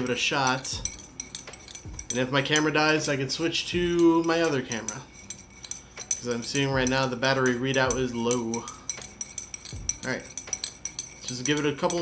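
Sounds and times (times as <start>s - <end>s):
teaspoon clinking in a mug: 0.0s - 12.0s.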